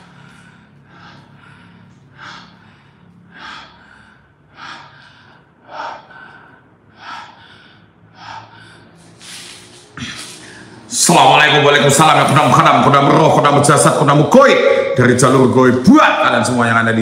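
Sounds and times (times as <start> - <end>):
man breathing heavily: 0.0 - 11.0.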